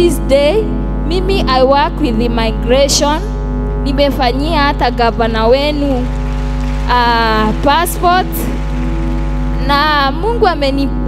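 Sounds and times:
sustained background music chord: 0.0s - 11.0s.

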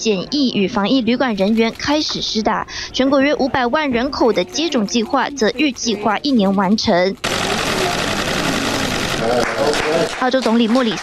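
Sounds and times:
person speaking: 0.0s - 11.0s
small group clapping: 7.2s - 11.0s.

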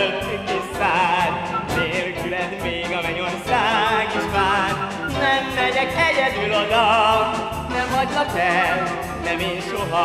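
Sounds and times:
orchestral accompaniment: 0.0s - 10.0s.

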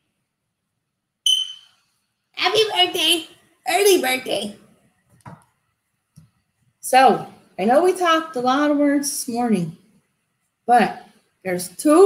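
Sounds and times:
high-pitched squeak: 1.3s - 1.8s.

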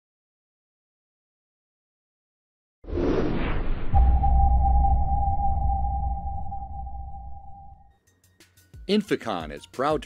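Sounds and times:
deep rumble: 2.9s - 7.9s
steady ringing tone: 4.0s - 7.9s.

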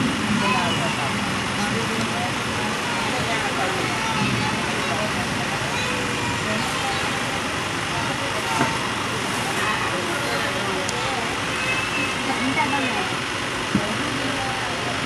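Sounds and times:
people talking: 0.0s - 15.0s
train carriage rushing noise: 0.0s - 15.0s.

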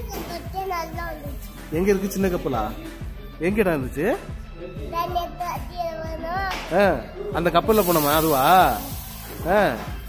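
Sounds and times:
boy making sing-song sounds: 0.0s - 1.6s, 4.8s - 7.3s
steady high hiss: 7.7s - 10.0s.

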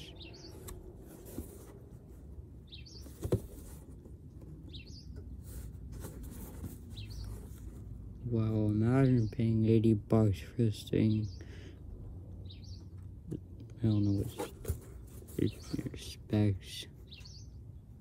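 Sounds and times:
small bird chirping: 0.0s - 0.8s, 2.6s - 3.7s, 4.5s - 5.7s, 6.4s - 7.8s, 12.4s - 13.0s, 17.0s - 17.8s.

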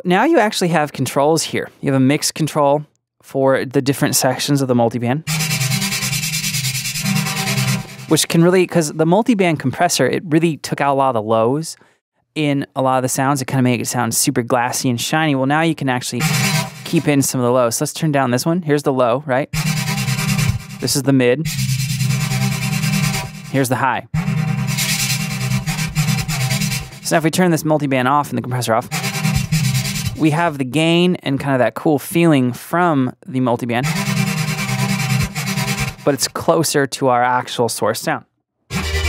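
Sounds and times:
stuttering synthesizer note: 5.3s - 8.2s, 16.2s - 17.1s, 19.6s - 20.8s, 21.5s - 23.6s, 24.2s - 27.1s, 28.8s - 30.2s, 33.8s - 36.1s, 38.7s - 39.0s.

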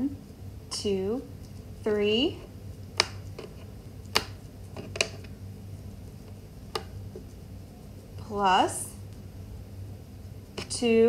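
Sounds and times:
plastic counters clicking: 3.0s - 5.3s.

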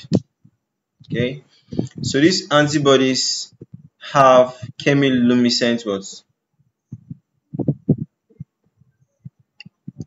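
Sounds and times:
soft low thuds: 0.0s - 2.3s, 3.4s - 4.0s, 6.6s - 10.0s.

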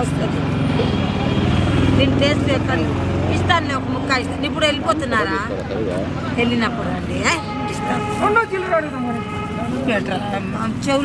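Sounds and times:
people talking: 0.0s - 11.0s
vehicle engine running: 0.0s - 11.0s.

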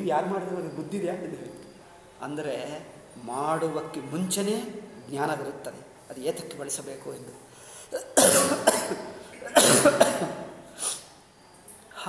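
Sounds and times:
person coughing: 8.0s - 10.6s.

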